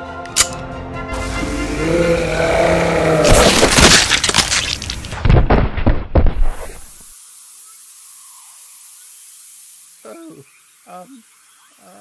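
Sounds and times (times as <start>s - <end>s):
background music: 0.0s - 3.2s.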